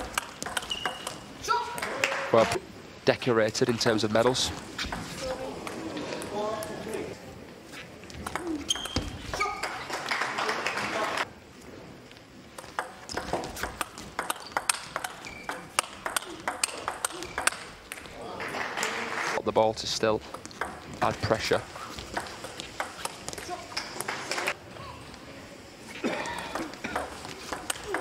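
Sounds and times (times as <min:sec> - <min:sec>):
table tennis ball clicks: 0:12.6 - 0:18.1.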